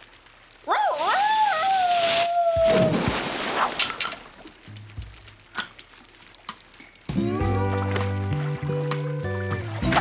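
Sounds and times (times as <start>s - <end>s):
cartoon dog howling: 0.7s - 2.9s
whoosh down a water slide: 0.7s - 3.8s
splash into pool: 1.0s - 4.3s.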